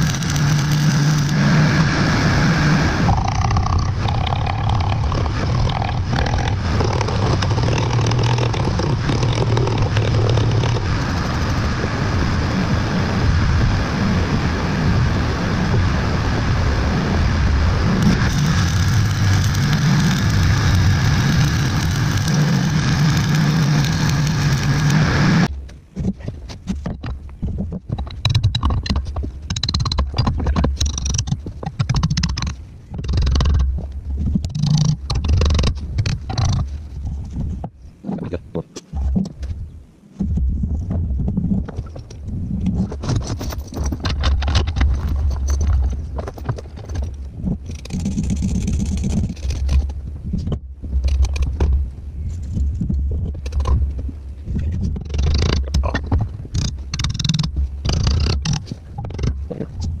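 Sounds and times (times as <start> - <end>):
hand tool scraping steel welds: 0.0 - 1.6, 18.0 - 25.5
low rumble: 0.0 - 60.0.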